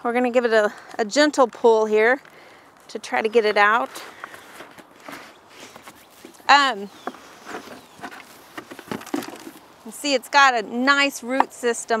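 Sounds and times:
plastic pot rustling and scraping: 3.2 - 10.2.

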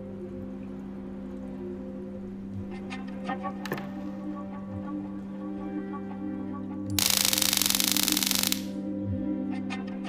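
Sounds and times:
film music: 0.0 - 10.0
stun gun electric crackle: 6.9 - 8.8.

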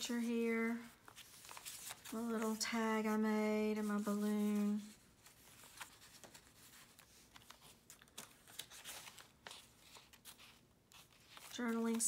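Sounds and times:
paper rustling: 0.0 - 2.9, 3.8 - 12.0.

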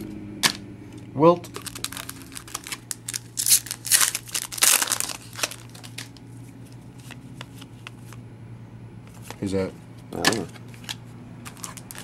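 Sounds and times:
foil wrapper crinkling: 1.4 - 6.2, 10.8 - 12.0.

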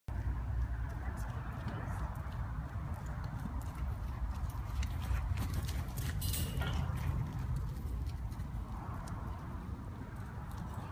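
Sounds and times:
hoofbeats on dirt: 0.1 - 10.9.

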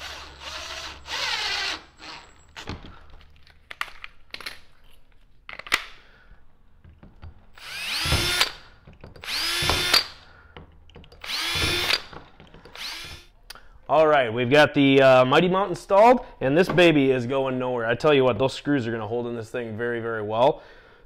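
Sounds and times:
cordless drill driving screws: 0.0 - 2.8, 7.6 - 10.2, 11.2 - 13.3.

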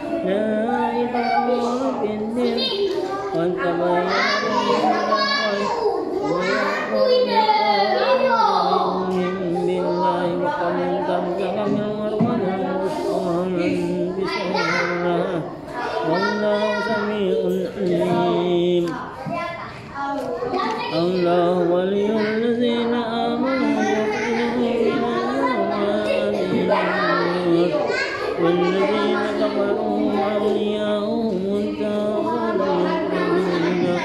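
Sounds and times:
man chanting: 0.0 - 19.1, 20.9 - 34.0.

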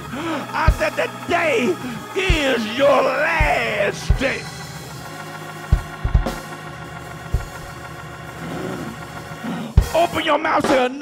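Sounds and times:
person preaching: 0.0 - 4.7, 9.8 - 11.0
organ sustained chord: 0.0 - 10.7
low drum hit: 5.7 - 6.4.

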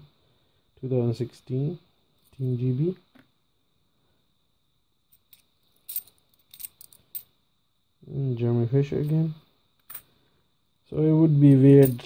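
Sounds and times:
coins clinking in the hand: 5.2 - 7.3, 11.5 - 12.0.

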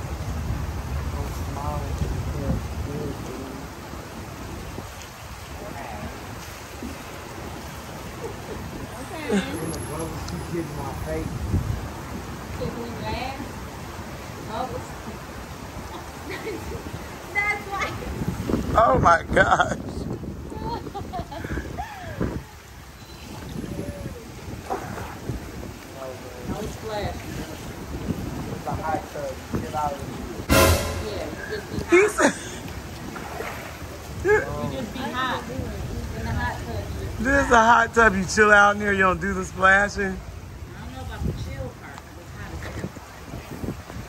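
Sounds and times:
hot tub jets bubbling: 0.0 - 20.8, 21.4 - 30.5.

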